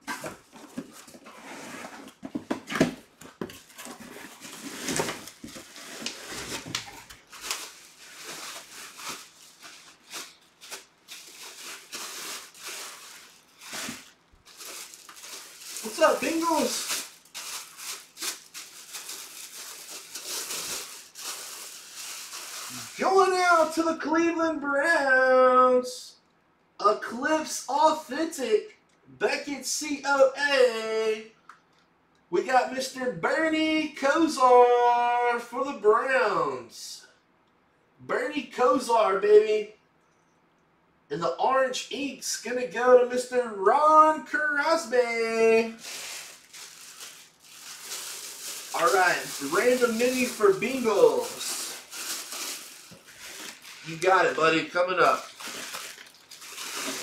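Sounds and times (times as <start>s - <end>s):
plastic wrapping rustling: 0.0s - 23.8s, 45.7s - 57.0s
plastic bag crinkling: 3.6s - 23.0s, 45.7s - 57.0s.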